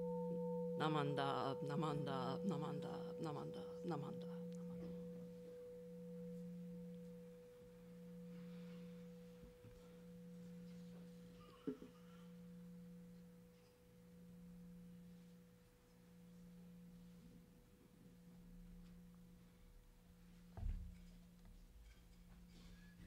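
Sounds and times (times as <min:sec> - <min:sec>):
faint low pulsing tone: 0:00.0 - 0:11.8
fainter higher tone: 0:00.0 - 0:15.3.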